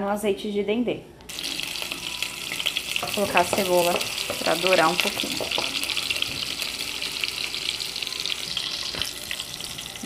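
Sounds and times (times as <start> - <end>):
onion sizzling in a pan: 1.3 - 10.0.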